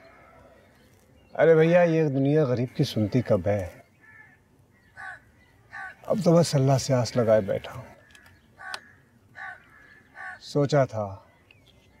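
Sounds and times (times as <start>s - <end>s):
faint bird calls: 2.1s - 12.0s.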